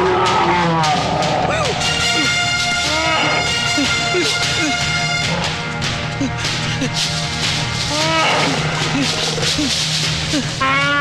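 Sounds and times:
elephant trumpeting: 0:00.0 - 0:05.7, 0:07.8 - 0:09.5, 0:10.3 - 0:11.0
film score with low drone: 0:00.0 - 0:11.0.

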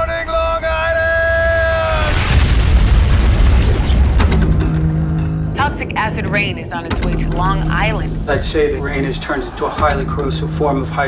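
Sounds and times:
deep trailer boom with rumble: 0:01.5 - 0:05.0.

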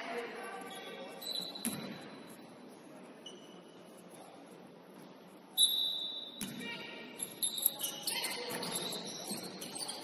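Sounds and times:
quiet gym ambience: 0:00.0 - 0:10.0.

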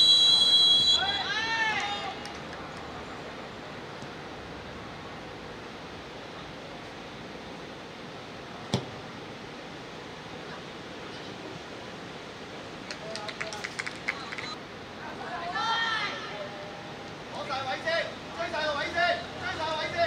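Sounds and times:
steady open-air hiss: 0:00.0 - 0:20.0.

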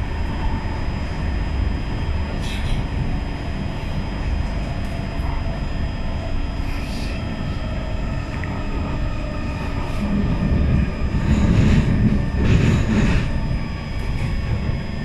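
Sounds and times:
train wheels rumbling on rail: 0:00.0 - 0:15.0.

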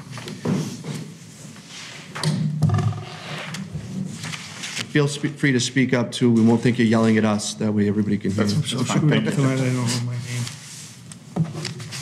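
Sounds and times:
paper sheets rustling: 0:04.0 - 0:05.2, 0:09.5 - 0:12.0.

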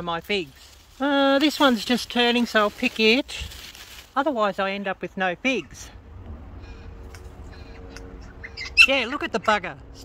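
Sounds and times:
steady low rumble: 0:04.9 - 0:10.0
bird calling faintly: 0:05.5 - 0:10.0.

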